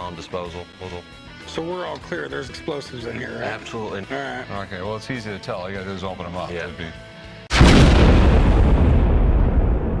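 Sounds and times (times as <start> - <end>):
explosion rumble: 7.5 - 10.0.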